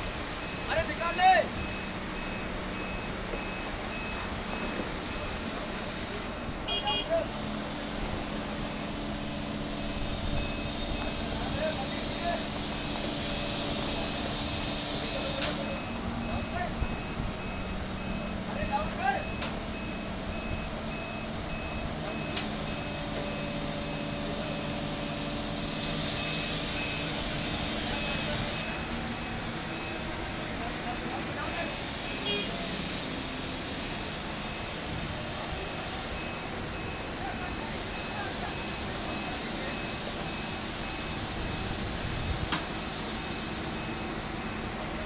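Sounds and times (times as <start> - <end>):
diesel engine hum: 0.0 - 45.0
machinery warning beeper: 0.0 - 45.0.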